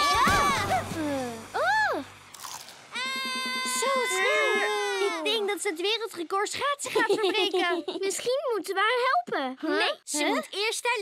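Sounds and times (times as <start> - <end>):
comic sliding effects: 0.0 - 5.6.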